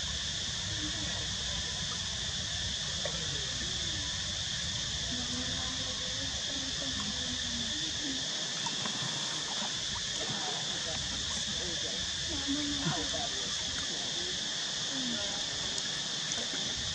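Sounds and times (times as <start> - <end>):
high-pitched insect chorus: 0.0 - 16.9.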